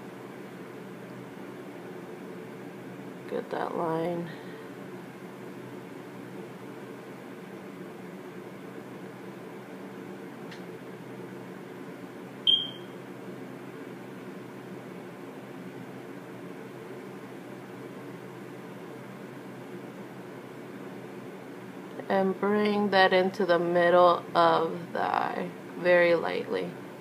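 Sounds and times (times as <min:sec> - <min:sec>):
low background hum: 0:00.0 - 0:27.0
electronic beep: 0:12.5 - 0:12.9.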